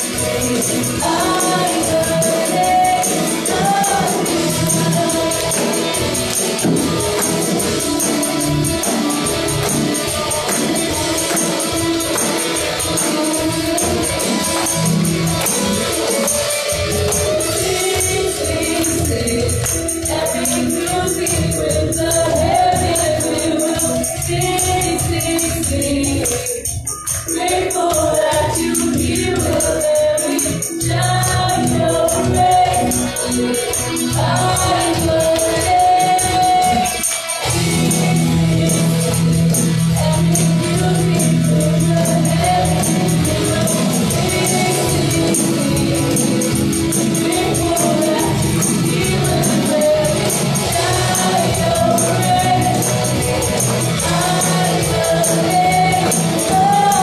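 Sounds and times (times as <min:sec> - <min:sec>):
instrumental accompaniment: 0:00.0 - 0:57.0
woman singing gospel song: 0:00.0 - 0:57.0.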